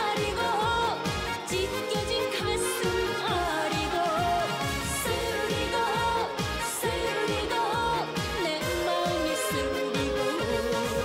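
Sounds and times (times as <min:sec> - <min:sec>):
kick drum dance beat: 0:00.0 - 0:11.0
woman singing into a microphone: 0:00.0 - 0:11.0
backing band: 0:01.0 - 0:11.0.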